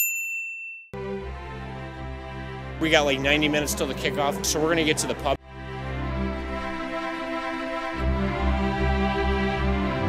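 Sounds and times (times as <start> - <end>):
bell-like ding: 0.0 - 1.0
music with sustained notes: 1.0 - 10.0.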